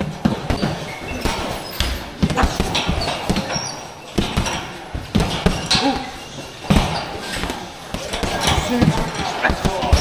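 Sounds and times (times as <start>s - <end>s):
punches thudding on heavy bag: 0.0s - 10.0s.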